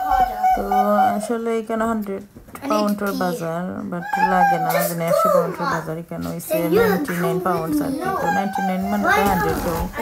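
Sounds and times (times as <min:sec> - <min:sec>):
voices talking: 0:00.0 - 0:10.0
child talking: 0:02.6 - 0:10.0.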